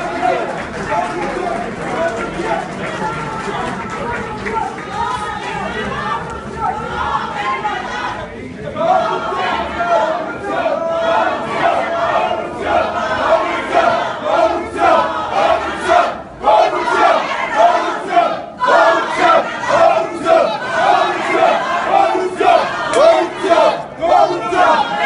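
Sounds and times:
crowd chanting: 0.0s - 25.0s.

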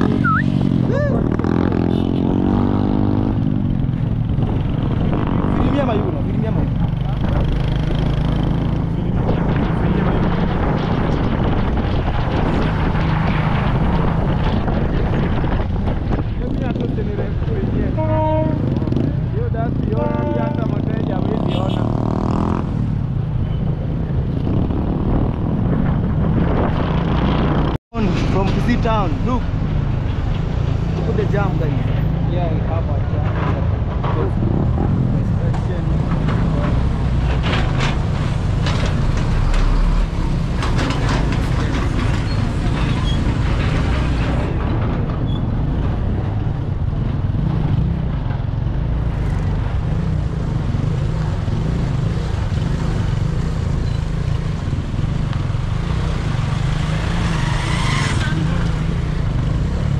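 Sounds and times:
voices: 0.0s - 1.4s, 16.4s - 22.0s
traffic: 0.0s - 59.9s.

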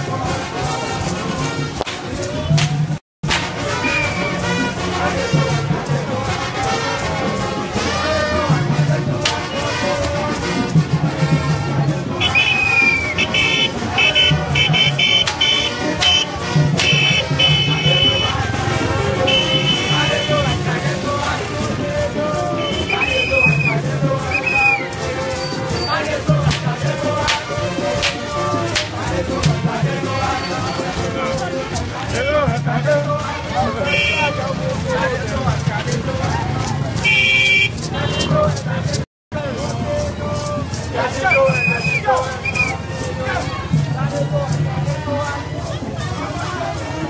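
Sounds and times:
crowd voices: 0.0s - 47.0s
horns blasting rhythmically: 0.0s - 47.0s
high-pitched horn blast: 19.2s - 20.7s
sharp percussive hits: 26.3s - 31.1s.

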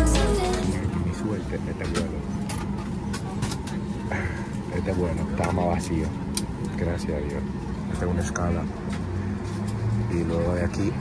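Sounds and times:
airliner cabin hum: 0.0s - 9.8s
passengers' voices: 0.0s - 10.9s.

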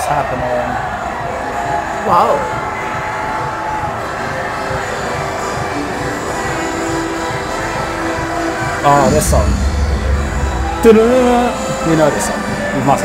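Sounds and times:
stadium crowd roar: 0.0s - 13.0s
music over sound system: 2.3s - 13.0s.

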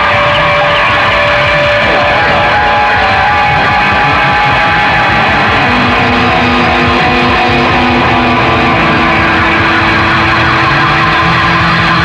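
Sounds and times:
distorted electric guitar: 0.0s - 12.0s
drums: 0.0s - 12.0s.

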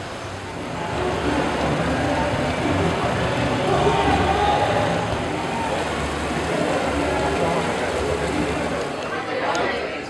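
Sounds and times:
vehicle engines rumbling: 0.0s - 10.0s
indistinct voices: 0.5s - 10.0s.

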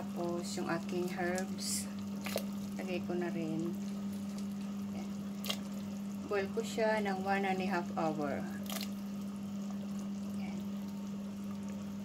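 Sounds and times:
soup bubbling in a pot: 0.0s - 12.0s
steady low hum: 0.0s - 12.0s.

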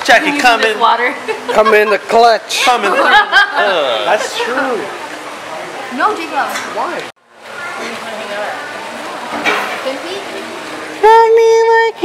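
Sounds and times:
fountain jets splashing into pool: 0.0s - 12.0s.

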